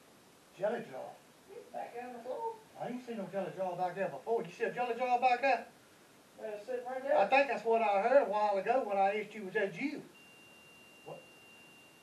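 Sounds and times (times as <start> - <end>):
faint high-pitched tone: 10.1 - 12.0.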